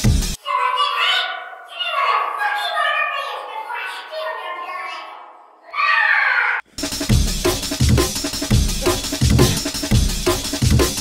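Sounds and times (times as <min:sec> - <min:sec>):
drum and bass beat: 0:00.0 - 0:00.4, 0:06.8 - 0:11.0.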